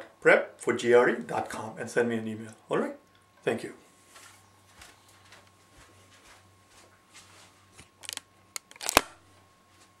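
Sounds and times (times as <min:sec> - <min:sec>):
handling noise clicks: 0:08.0 - 0:09.1.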